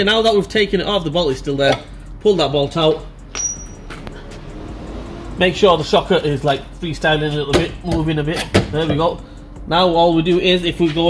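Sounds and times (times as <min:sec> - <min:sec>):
metal object clinking on hard surface: 0:03.3 - 0:04.0.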